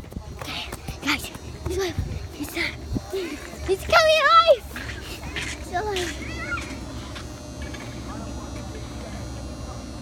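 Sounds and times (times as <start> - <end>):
steady low rumble: 0.0 - 10.0
children's high-pitched cries: 5.4 - 7.0.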